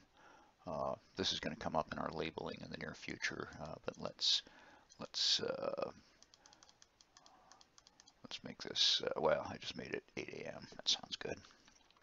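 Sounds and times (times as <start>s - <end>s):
computer keyboard typing: 6.2s - 8.2s.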